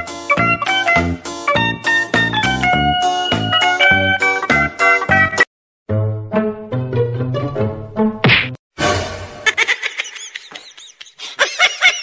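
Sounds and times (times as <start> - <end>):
music: 0.0 - 9.4
sharp whack: 8.2 - 8.6.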